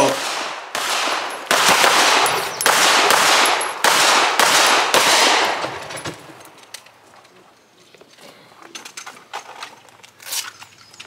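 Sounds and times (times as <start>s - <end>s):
echoing gunshots: 0.0s - 5.9s.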